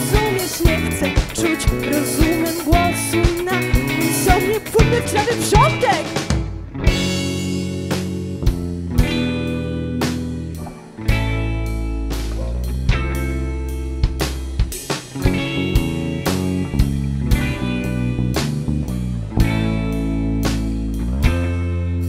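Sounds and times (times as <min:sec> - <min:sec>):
drum kit strikes: 0:00.0 - 0:21.6
live band playing: 0:00.0 - 0:22.0.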